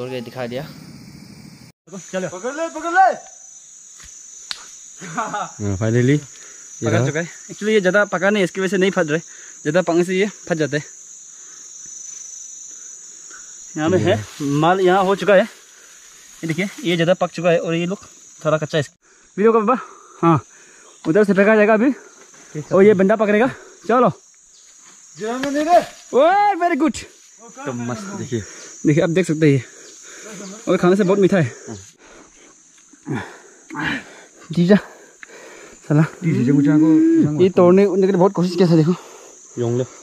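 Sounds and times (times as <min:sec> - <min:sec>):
insects chirring: 0:00.0 - 0:40.0
man speaking: 0:06.8 - 0:07.3, 0:13.8 - 0:14.9, 0:25.2 - 0:29.6, 0:35.9 - 0:39.0.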